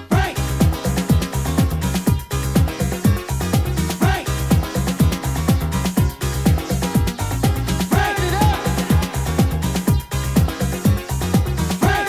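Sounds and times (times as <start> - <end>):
kick drum beat: 0.0 - 12.0
pulsing bassline: 0.0 - 12.0.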